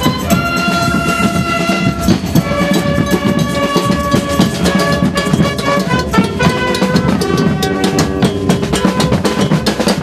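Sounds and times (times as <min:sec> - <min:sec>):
marching band playing chords: 0:00.0 - 0:10.0
steady drum beat: 0:00.0 - 0:10.0.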